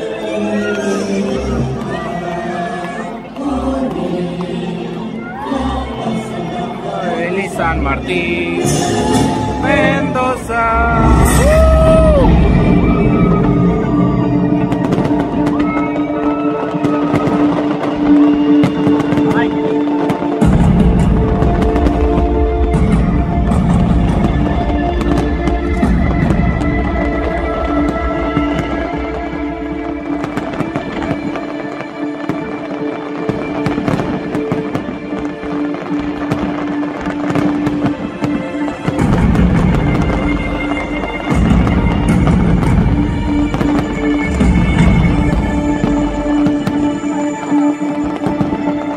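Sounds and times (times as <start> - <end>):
fireworks bursting and crackling: 0.0 - 48.9
loud music with held notes: 0.0 - 48.9.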